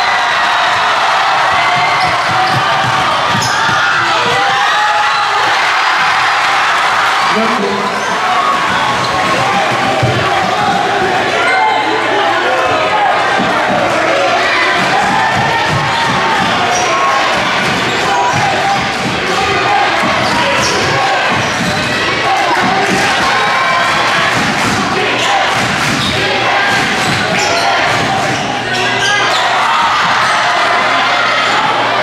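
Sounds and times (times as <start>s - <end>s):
crowd talking and calling out: 0.0s - 32.0s
basketball bouncing on hardwood: 1.5s - 4.4s.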